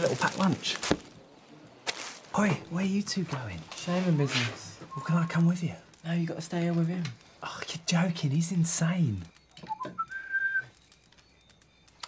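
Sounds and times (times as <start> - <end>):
person whistling: 4.9 - 5.4, 9.6 - 10.8
faint small clicks: 9.2 - 12.0.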